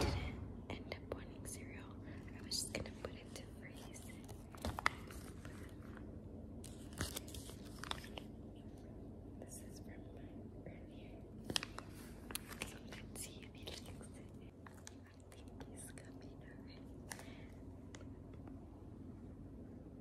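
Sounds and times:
soft whispering: 0.0 - 6.0, 8.5 - 17.8.

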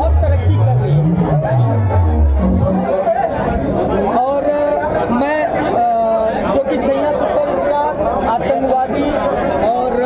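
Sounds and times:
man talking: 0.0 - 3.2
background voices chattering: 0.0 - 10.0.

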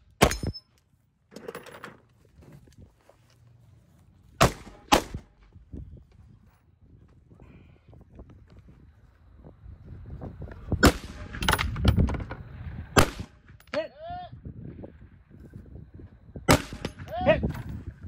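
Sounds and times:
rifle shots: 4.4 - 5.3, 10.8 - 11.7, 13.0 - 13.5, 16.5 - 17.1.

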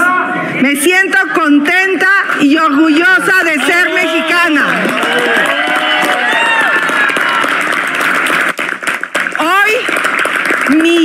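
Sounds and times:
crowd applauding: 3.6 - 11.0.

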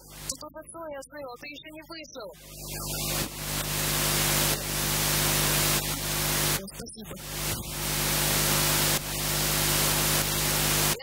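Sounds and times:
static hiss: 0.0 - 0.4, 2.4 - 11.0
low electrical hum: 2.3 - 11.0.

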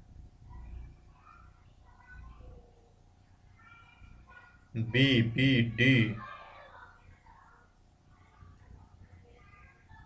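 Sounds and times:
man speaking: 4.8 - 6.2.

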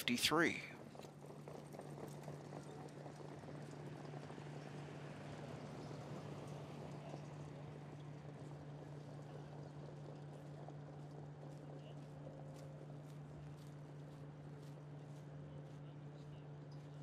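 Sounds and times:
faint hoofbeats on a track: 0.0 - 17.0
steady low hum: 0.0 - 17.0.

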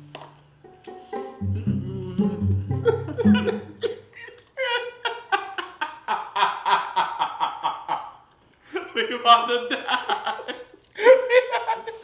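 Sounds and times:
plucked bass music: 1.3 - 3.9
man laughing hard: 2.7 - 12.0.

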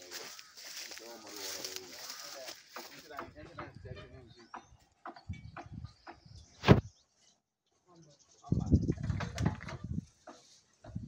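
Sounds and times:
faint voices talking: 0.0 - 6.2.

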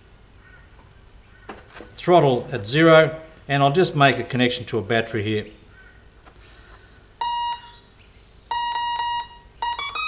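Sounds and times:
motor startup beeps: 7.2 - 10.0.

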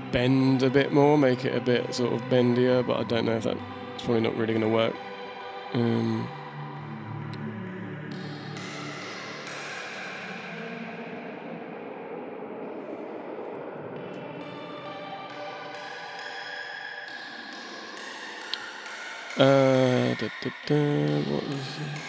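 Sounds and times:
sustained synth chords: 0.0 - 22.0.

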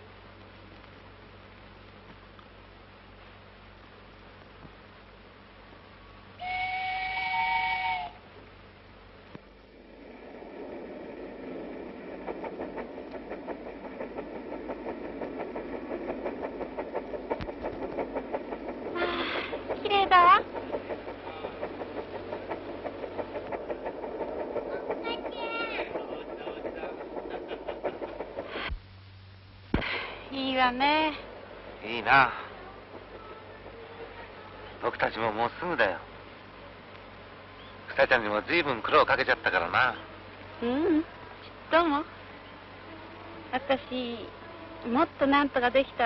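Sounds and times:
train rhythmic clatter: 6.2 - 28.8, 30.1 - 46.0
steam train whistle: 6.4 - 8.3, 19.0 - 19.5.

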